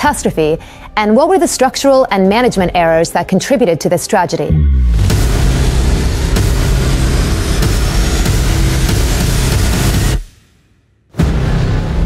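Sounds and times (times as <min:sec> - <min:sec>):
low music drone: 0:04.5 - 0:10.2.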